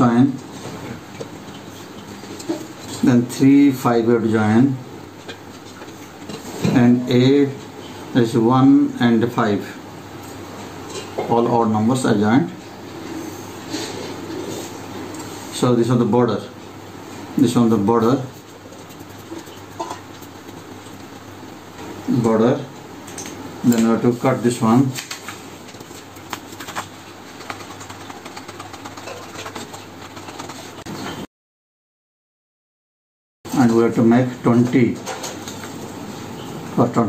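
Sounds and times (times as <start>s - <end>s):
low background hum: 0.0s - 31.2s
paper rustling: 25.0s - 31.2s.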